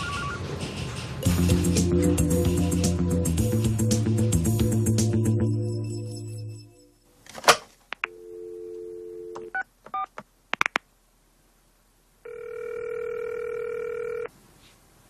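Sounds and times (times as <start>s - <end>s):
keypad tones: 8.0s - 10.1s
dial tone: 8.1s - 9.5s, 12.2s - 14.3s
telephone ringing tone: 8.1s - 9.6s, 12.2s - 14.3s.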